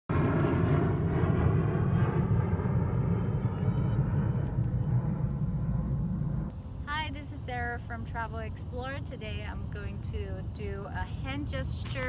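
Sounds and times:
aircraft engine rumble: 0:00.1 - 0:12.0
high engine tones: 0:02.4 - 0:10.5.

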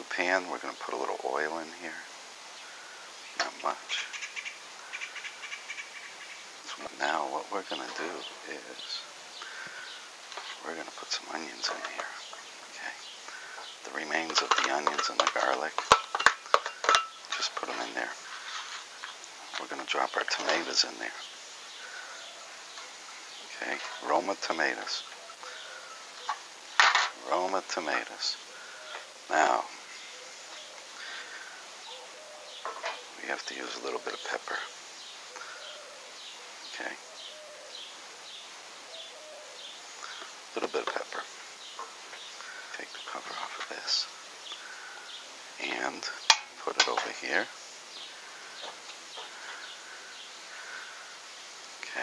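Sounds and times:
small birds chirping: 0:00.0 - 0:52.0
steady low hiss: 0:00.0 - 0:52.0.

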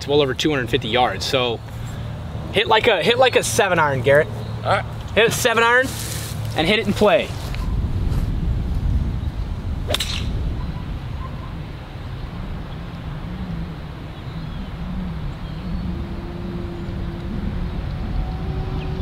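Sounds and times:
wind rumble on microphone: 0:06.3 - 0:19.0
golf club striking ball: 0:09.9 - 0:10.4.

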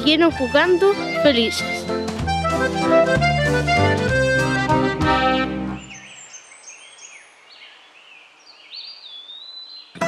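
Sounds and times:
small birds chirping: 0:01.3 - 0:02.3, 0:05.6 - 0:10.0.

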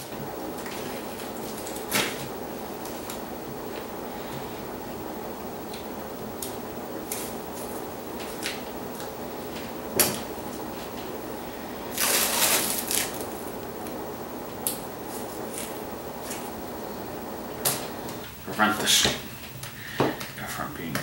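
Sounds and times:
room noise: 0:00.0 - 0:21.0
tape ripping off roll: 0:11.9 - 0:13.2.

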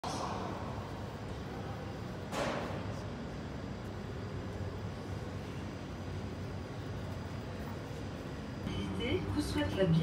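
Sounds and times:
station ambience: 0:00.0 - 0:10.0
electric train humming: 0:03.2 - 0:10.0.

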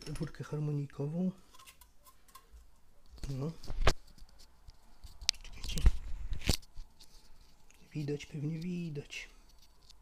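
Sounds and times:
rustling: 0:01.4 - 0:10.0.

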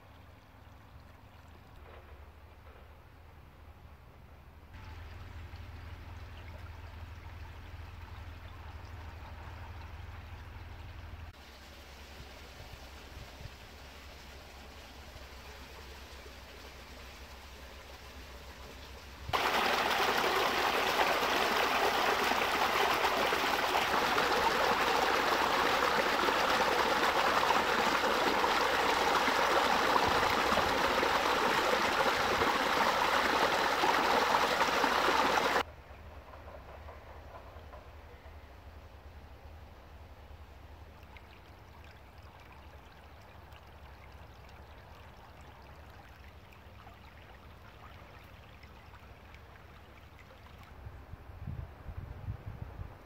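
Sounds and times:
brook trickling: 0:00.0 - 0:02.5, 0:04.6 - 0:35.7, 0:40.3 - 0:51.1
water rushing over stones: 0:19.3 - 0:35.6.

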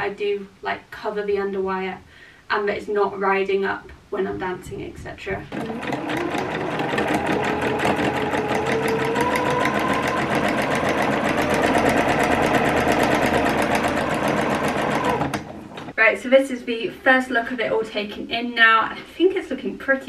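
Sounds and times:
sewing machine stitching: 0:05.4 - 0:16.0.

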